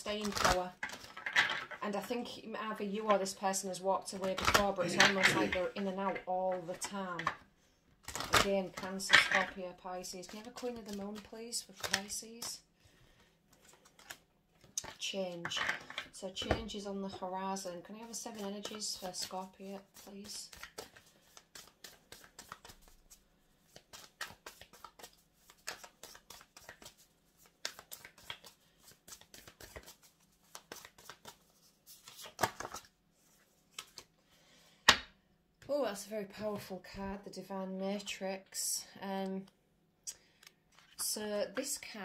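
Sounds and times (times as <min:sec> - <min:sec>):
cards being shuffled: 0:00.1 - 0:01.8, 0:04.2 - 0:07.4, 0:08.0 - 0:12.6, 0:13.5 - 0:16.1, 0:18.0 - 0:34.1, 0:40.4 - 0:41.8
cards clicking and tapping: 0:10.2 - 0:12.6, 0:20.0 - 0:23.0, 0:23.7 - 0:32.9.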